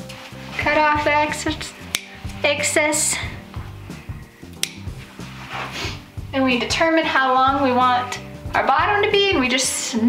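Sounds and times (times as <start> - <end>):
background music with bass line: 0.0 - 10.0
scissors snipping cord: 1.8 - 2.4, 4.6 - 5.0.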